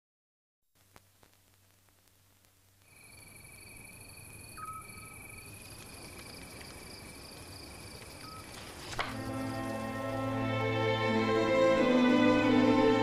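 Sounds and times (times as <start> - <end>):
insects chirring: 2.6 - 10.5.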